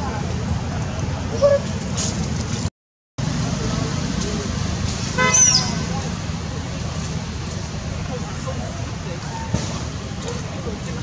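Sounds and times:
faint indistinct voices: 5.6s - 11.0s.

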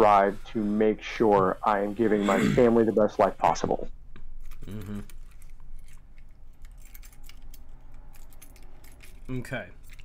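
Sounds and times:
small hard objects clicking and jingling: 4.4s - 10.0s.

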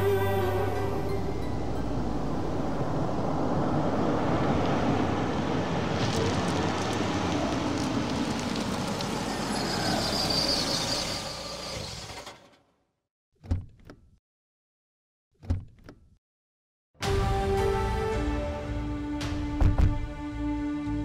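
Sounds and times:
car rolling over gravel: 4.5s - 12.5s.

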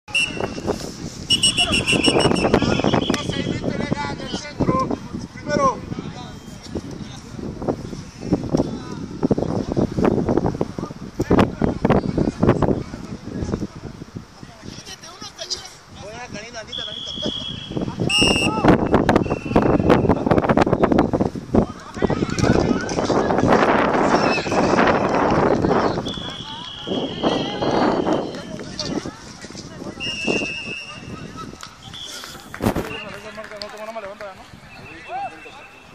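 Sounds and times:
referee whistle blast: 0.1s - 0.6s, 1.3s - 3.3s, 16.7s - 20.2s, 26.1s - 28.4s, 30.0s - 31.1s, 34.7s - 35.9s.

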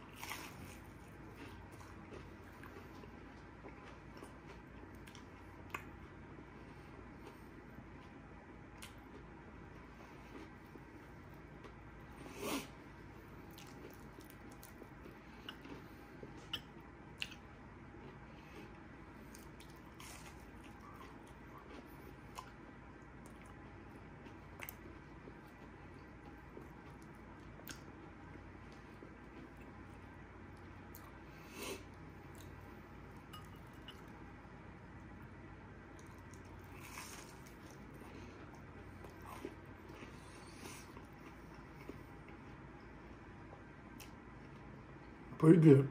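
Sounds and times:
chewing and crunching: 0.0s - 44.8s.

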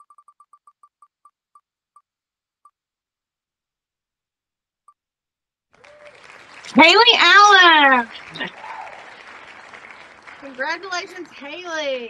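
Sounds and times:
faint recorded applause: 5.8s - 12.0s.

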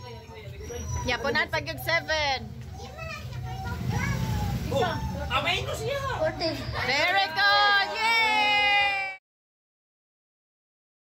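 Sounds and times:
children and adults talking: 0.0s - 9.2s.

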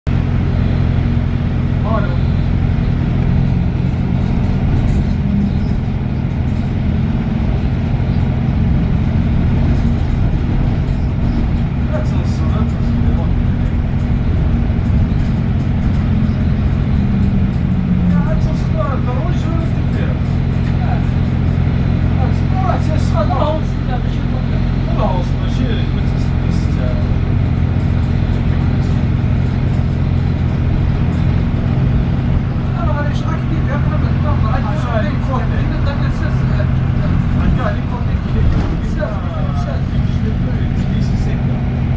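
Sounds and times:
bus engine drone: 0.0s - 41.9s
low hum tones: 0.1s - 41.9s.

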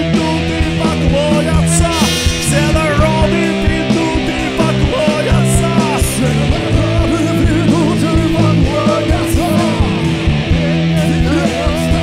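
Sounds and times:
electric guitars: 0.0s - 12.0s
live rock band playing: 0.0s - 12.0s.

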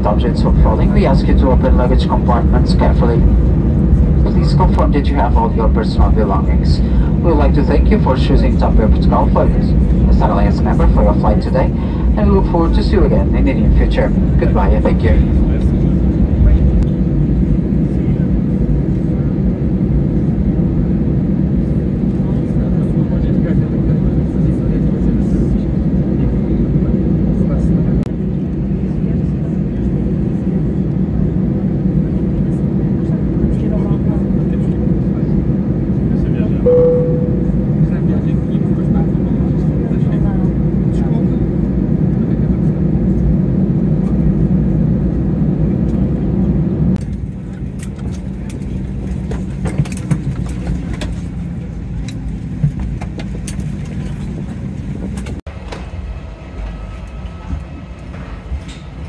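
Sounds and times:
aircraft cabin noise: 0.0s - 59.0s
jet engines rumbling: 0.0s - 59.0s
brief tone: 36.7s - 37.9s.

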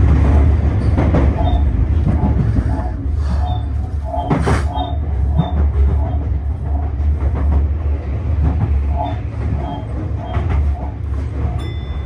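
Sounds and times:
electric train running rumble: 0.0s - 12.0s.

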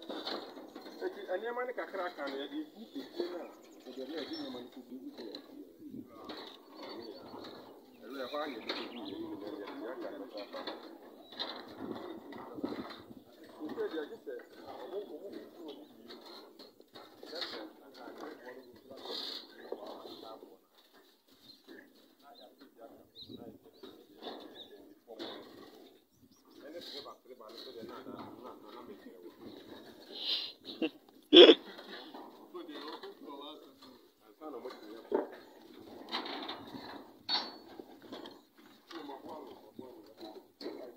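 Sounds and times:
muffled human voices: 0.9s - 20.6s, 21.6s - 36.8s, 38.9s - 40.9s.

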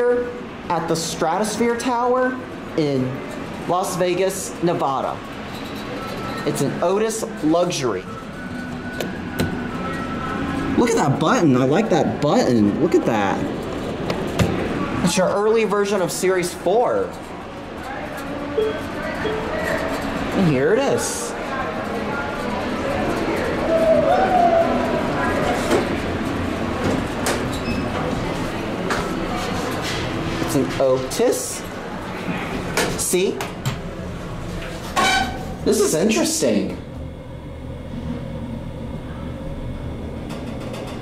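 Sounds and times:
steady low hum: 0.0s - 41.0s
elevator arriving: 5.2s - 15.2s, 17.4s - 30.5s.

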